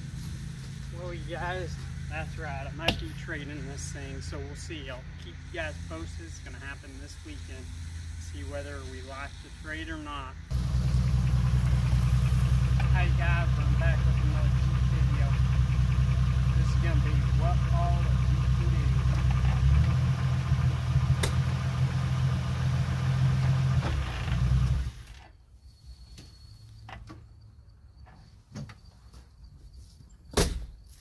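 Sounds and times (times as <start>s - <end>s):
car engine idling: 0.0s - 9.8s, 10.4s - 25.1s.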